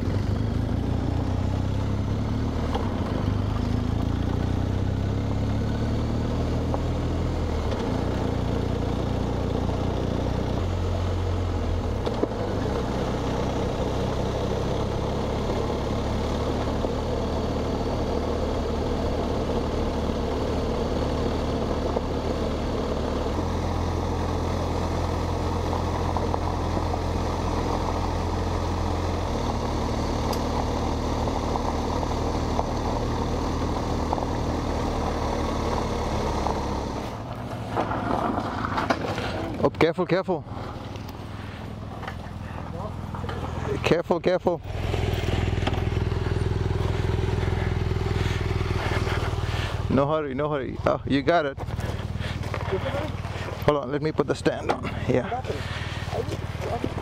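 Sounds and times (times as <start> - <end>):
motorcycle engine running: 0.0 - 57.0
road and wind noise: 0.0 - 57.0.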